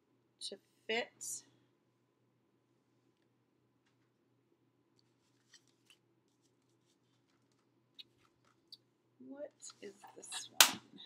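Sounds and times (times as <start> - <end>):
paper and craft tools handled: 5.0 - 8.7.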